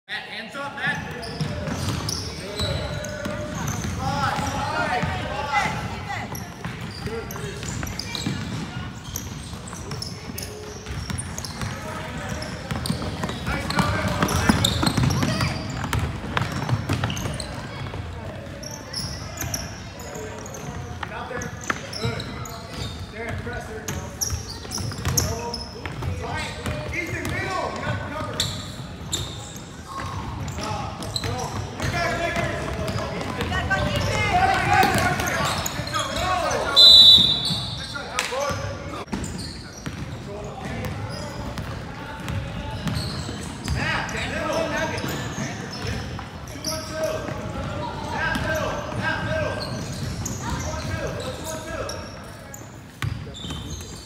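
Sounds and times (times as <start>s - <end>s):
basketball bouncing on hardwood court: 1.3s - 18.6s, 20.4s - 27.9s, 30.0s - 35.5s, 39.1s - 43.8s, 48.3s - 49.0s.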